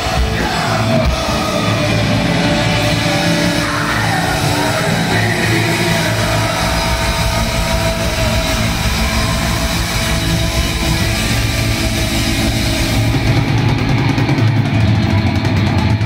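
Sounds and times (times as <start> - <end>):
bass guitar: 0.0 - 16.0
distorted electric guitar: 0.0 - 16.0
drums: 0.0 - 16.0.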